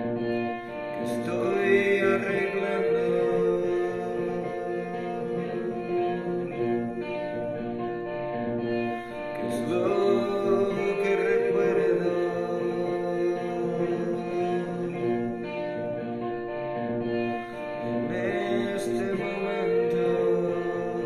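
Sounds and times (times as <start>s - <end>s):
man singing slow song: 0.0s - 7.8s, 8.8s - 16.6s, 17.2s - 21.0s
electric guitar: 0.0s - 21.0s.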